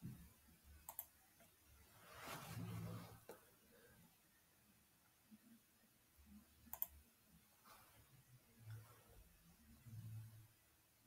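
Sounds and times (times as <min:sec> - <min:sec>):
computer mouse clicks: 0:00.8 - 0:01.5, 0:06.7 - 0:07.0
soft rustling: 0:01.8 - 0:03.5, 0:07.6 - 0:09.2.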